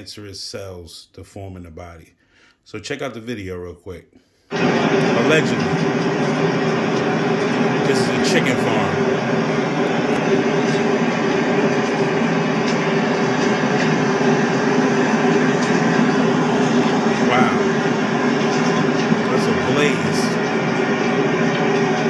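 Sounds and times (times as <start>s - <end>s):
fire loud steady drone: 4.5s - 22.0s.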